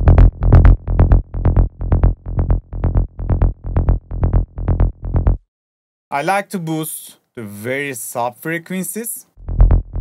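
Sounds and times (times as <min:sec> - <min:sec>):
rolling synth bassline: 0:00.0 - 0:05.5, 0:09.4 - 0:10.0
techno kick drum: 0:00.0 - 0:05.5, 0:09.4 - 0:10.0.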